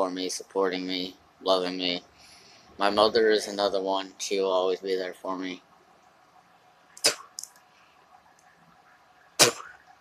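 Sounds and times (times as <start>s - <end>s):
sharp breath noises: 2.1s - 2.8s.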